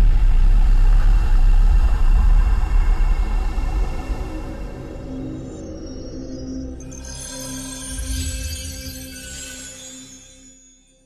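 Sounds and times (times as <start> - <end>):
deep steady rumble: 0.0 - 5.1.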